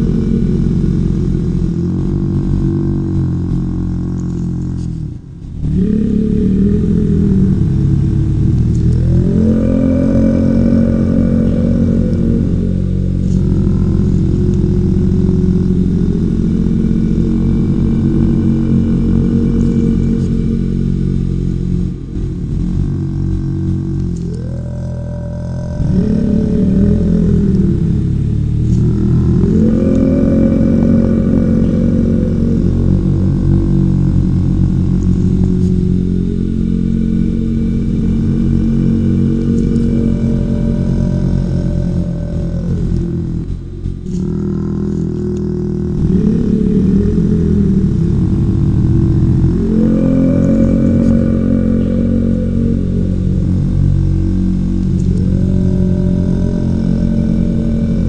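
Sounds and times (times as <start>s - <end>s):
deep layered drone: 0.0s - 58.0s.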